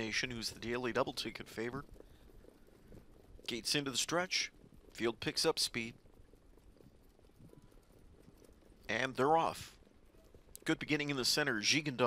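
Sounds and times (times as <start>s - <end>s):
faint trotting hoofbeats: 0.0s - 12.0s.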